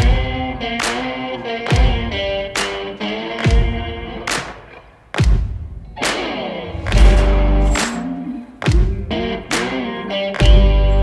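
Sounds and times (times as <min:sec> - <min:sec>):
deep drum hits: 0:06.8 - 0:07.9.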